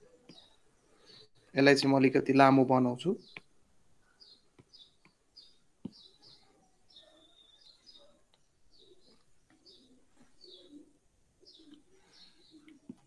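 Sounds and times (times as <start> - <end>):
faint bird chirps: 0.0 - 1.6, 3.1 - 13.0.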